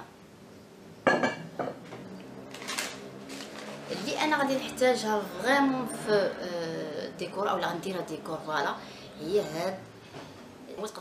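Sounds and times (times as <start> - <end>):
ceramic dishes knocking together: 1.1 - 1.8.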